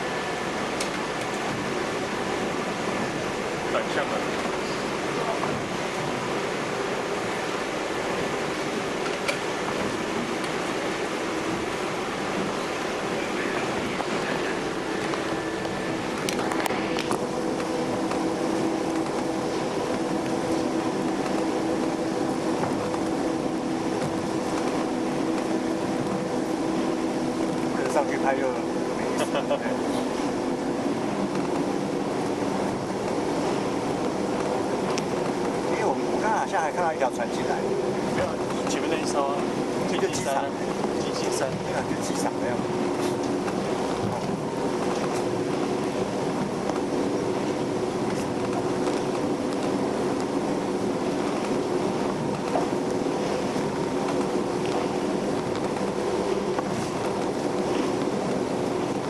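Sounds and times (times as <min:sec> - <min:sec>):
ferry engines droning: 0:00.0 - 0:59.0
low hum: 0:00.0 - 0:59.0.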